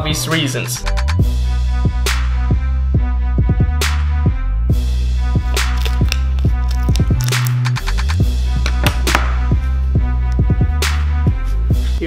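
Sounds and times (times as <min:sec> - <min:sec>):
regular drum hits: 0:07.7 - 0:09.7.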